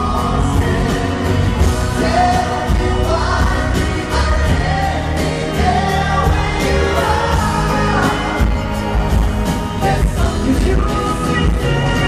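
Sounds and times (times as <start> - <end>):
acoustic guitar: 0.0 - 12.0
male vocal group singing in harmony: 0.0 - 12.0.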